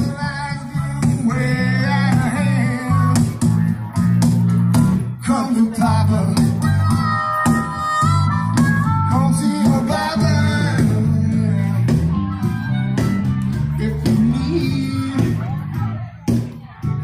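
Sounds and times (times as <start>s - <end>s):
live band music: 0.0s - 17.0s
stepping bass line: 0.0s - 17.0s.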